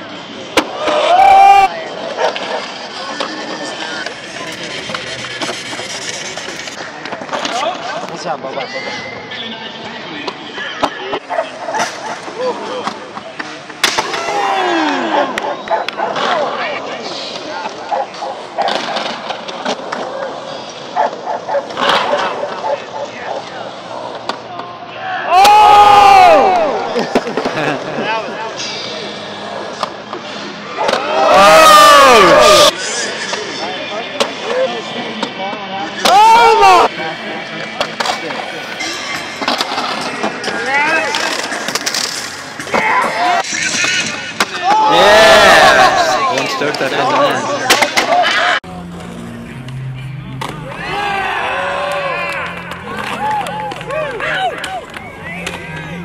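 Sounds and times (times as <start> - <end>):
skateboard wheels rolling on concrete: 0.0 - 56.0
skateboards clacking on concrete: 0.5 - 8.2, 10.2 - 24.7, 37.7 - 48.6
people yelling: 0.6 - 3.3, 14.0 - 18.0, 24.5 - 27.2, 30.7 - 32.8, 36.0 - 36.9, 42.6 - 48.6, 50.6 - 56.0.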